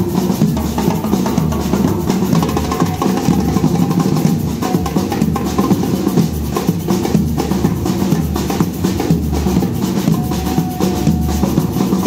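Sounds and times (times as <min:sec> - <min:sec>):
marching bass drums: 0:00.0 - 0:12.0
side drums: 0:00.0 - 0:12.0.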